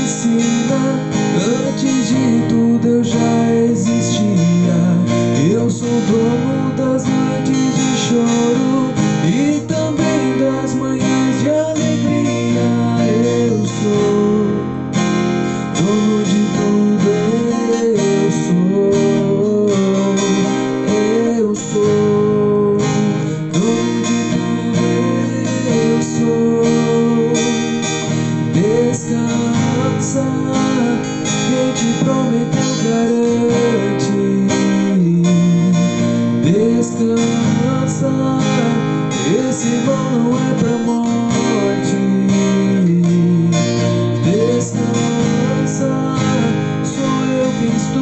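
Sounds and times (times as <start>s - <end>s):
acoustic guitar strumming: 0.0s - 48.0s.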